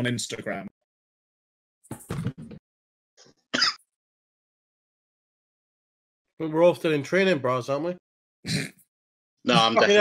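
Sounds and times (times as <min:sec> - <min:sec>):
person clearing throat: 0:08.5 - 0:08.8, 0:09.5 - 0:09.9.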